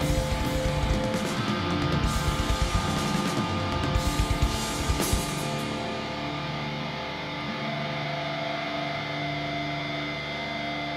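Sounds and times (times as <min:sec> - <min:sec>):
cymbals and drums: 0:00.0 - 0:06.2
electric guitar chord ringing: 0:00.0 - 0:10.9.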